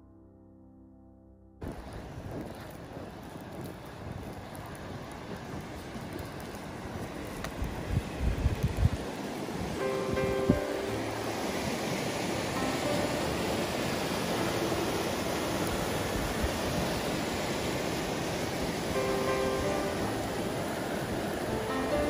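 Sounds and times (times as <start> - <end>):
river rapids rushing: 4.5 - 22.0
quiet background music: 9.8 - 17.6, 19.0 - 22.0.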